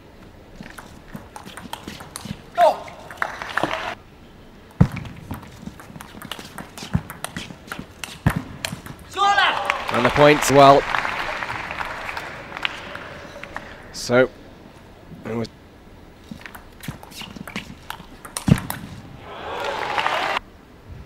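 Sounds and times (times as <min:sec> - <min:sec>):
table tennis ball clicks: 0:04.9 - 0:09.1, 0:16.3 - 0:19.0.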